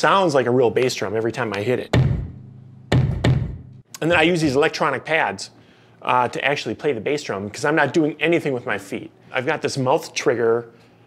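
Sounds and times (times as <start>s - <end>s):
deep electronic bass drum thuds: 1.9s - 3.8s.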